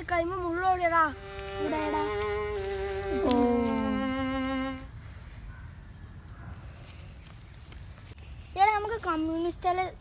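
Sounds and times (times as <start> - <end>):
faint steady high whine: 0.0 - 10.0
child calling out: 0.2 - 2.5, 3.1 - 4.0.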